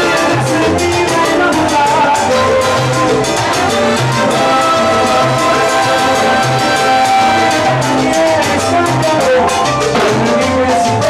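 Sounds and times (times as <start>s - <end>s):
bass notes: 0.0s - 11.0s
hand drum and timbale strokes: 0.0s - 11.0s
salsa band playing: 0.0s - 11.0s.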